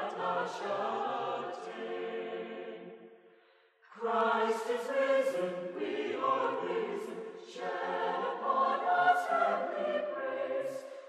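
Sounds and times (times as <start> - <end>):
choir singing a hymn: 0.0 - 3.2, 3.9 - 11.0.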